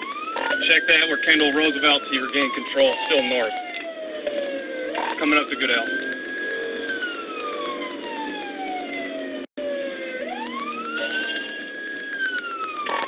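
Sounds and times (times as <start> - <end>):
police siren wailing: 0.0 - 13.0.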